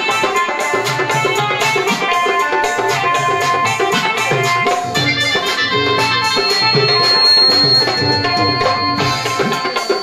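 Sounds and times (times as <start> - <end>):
held instrumental melody: 0.0 - 10.0
tabla rhythm: 0.0 - 10.0.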